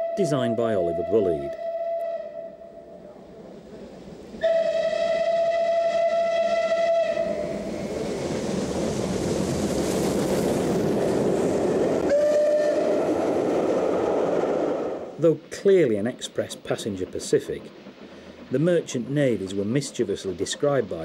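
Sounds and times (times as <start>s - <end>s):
steam whistle blast: 0.0s - 2.9s, 4.4s - 7.6s, 12.1s - 13.0s
train running past: 0.0s - 21.0s.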